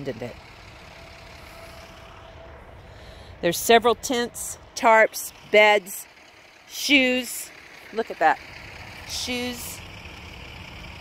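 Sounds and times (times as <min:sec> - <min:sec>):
distant vehicle traffic: 0:00.0 - 0:11.0.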